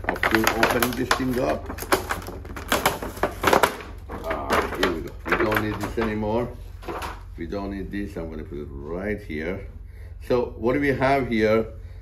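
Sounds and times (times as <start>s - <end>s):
plastic packaging crackling: 0.0s - 7.3s.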